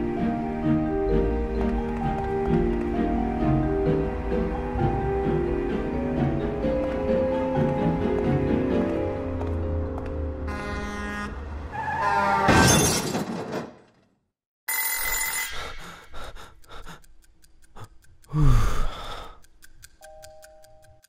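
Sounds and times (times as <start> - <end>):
film soundtrack music: 0.0 - 11.7, 18.9 - 21.0
bell-like ring: 14.7 - 15.6
clock ticking: 15.6 - 21.0.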